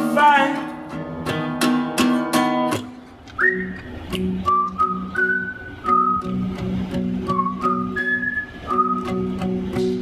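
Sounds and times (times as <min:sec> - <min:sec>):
strummed acoustic guitar: 0:00.0 - 0:10.0
whistled melody: 0:03.4 - 0:06.6, 0:07.2 - 0:09.4.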